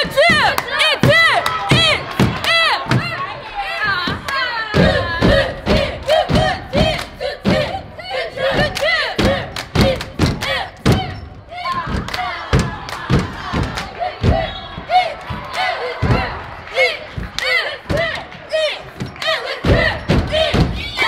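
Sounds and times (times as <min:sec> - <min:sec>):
cheerleaders chanting in unison: 0:00.0 - 0:21.0
hand claps: 0:15.2 - 0:20.7.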